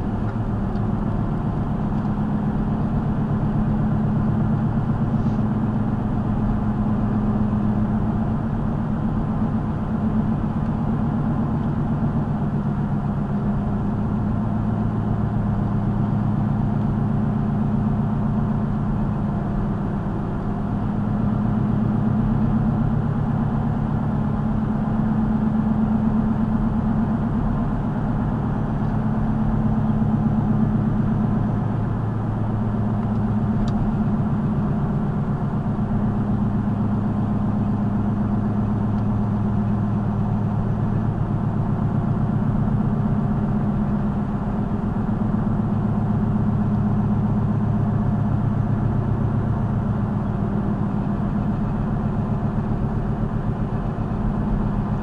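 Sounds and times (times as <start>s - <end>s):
car engine and tyre drone: 0.0s - 55.0s.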